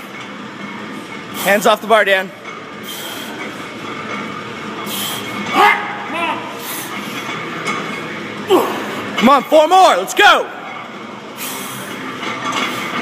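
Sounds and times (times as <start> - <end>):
noisy gym background: 0.0 - 13.0.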